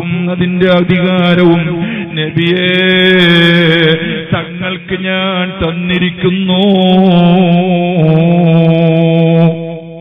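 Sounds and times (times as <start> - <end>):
man chanting a held note: 0.0 - 10.0.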